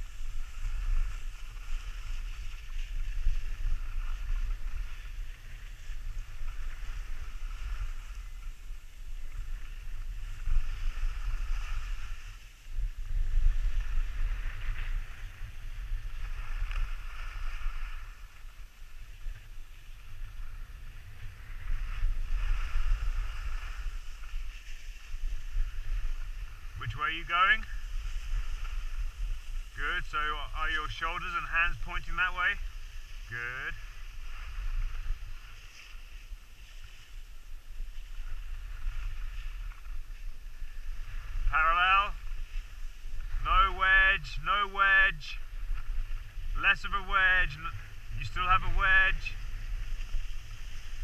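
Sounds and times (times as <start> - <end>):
skis sliding on snow: 0.0 - 51.0
wind buffeting microphone: 0.0 - 51.0.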